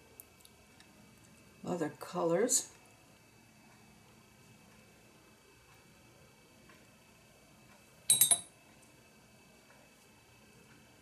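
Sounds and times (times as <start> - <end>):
paintbrush clinking glass jar: 8.1 - 8.5.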